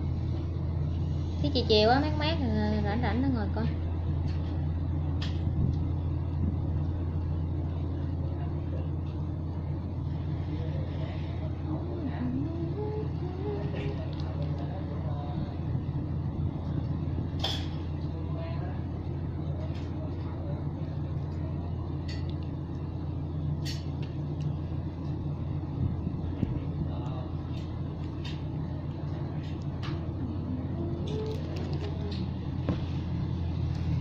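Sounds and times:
electric fan humming: 0.0 - 34.0.

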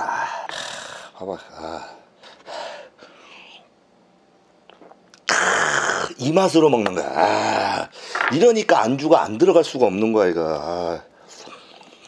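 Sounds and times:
man drinking from a glass: 4.7 - 6.1.

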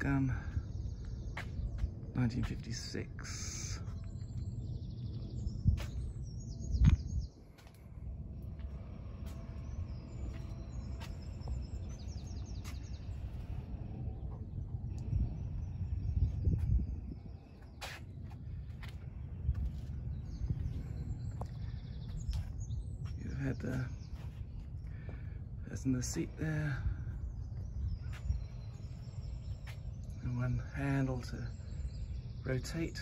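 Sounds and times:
low rumble: 0.0 - 32.5
birds chirping: 0.0 - 33.0.

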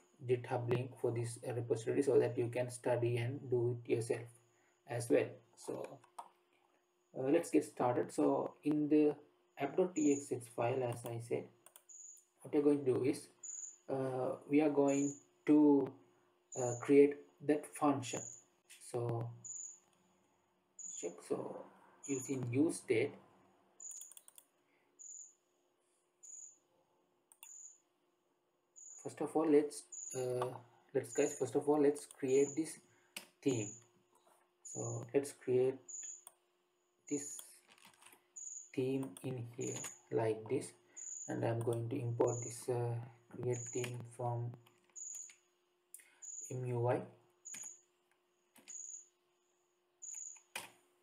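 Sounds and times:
faint high-pitched beeps: 9.9 - 12.2, 14.9 - 15.2, 31.0 - 32.8, 38.4 - 42.7, 43.4 - 44.2
click: 10.9 - 11.9, 23.8 - 24.5, 27.3 - 27.6, 36.0 - 36.4
keyboard or mouse clicks: 23.8 - 24.5, 27.3 - 27.6, 39.0 - 40.0, 43.5 - 45.4.

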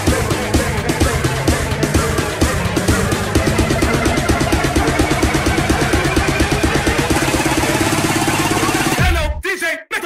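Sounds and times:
rapid buzzy synth stabs: 0.0 - 9.0.

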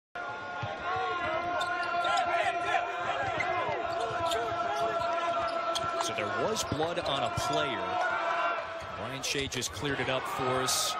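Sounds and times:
sneakers squeaking: 1.2 - 2.4, 3.0 - 7.5.

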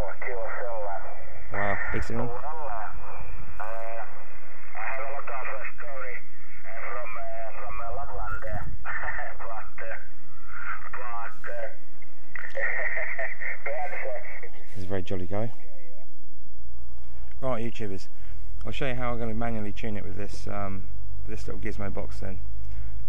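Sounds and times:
man's voice over shortwave radio: 0.0 - 4.2, 4.8 - 11.8
steady radio hiss: 0.0 - 23.0.

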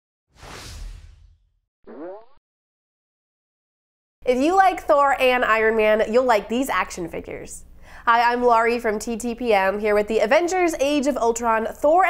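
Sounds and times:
whoosh: 0.3 - 1.6
short rising tone: 0.4 - 2.4.

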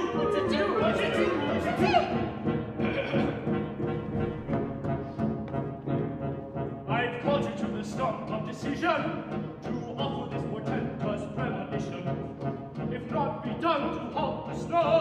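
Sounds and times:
clarinet: 0.0 - 6.7.

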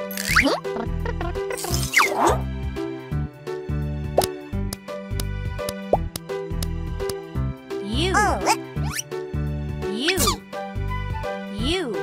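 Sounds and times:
bouncy cartoon music: 0.0 - 12.0.

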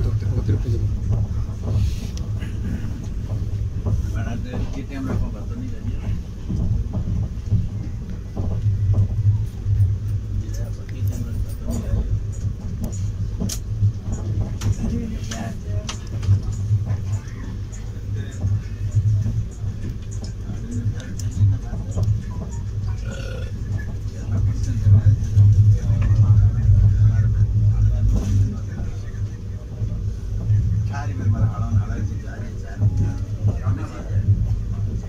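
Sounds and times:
faint voices: 0.0 - 35.0
train low rumble: 0.0 - 35.0.

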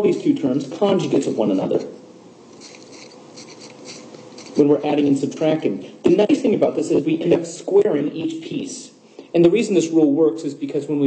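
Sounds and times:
pen scratching while writing: 2.6 - 4.6.

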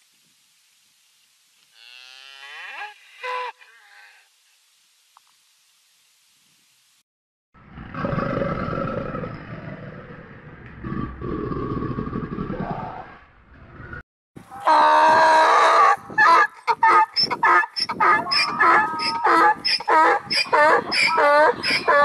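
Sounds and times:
low rumbling animal growl: 7.6 - 14.0
wild ass braying: 14.6 - 22.0.

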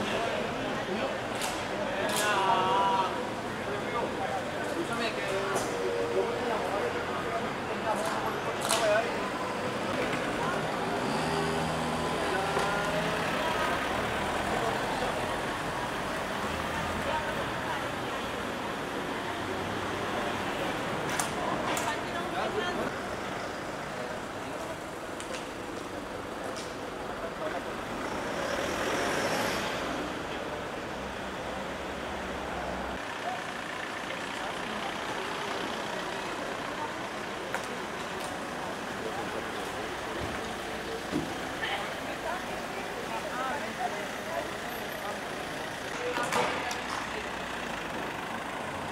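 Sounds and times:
murmur of bystanders' voices: 0.0 - 48.9
vehicles passing on road: 0.0 - 48.9.

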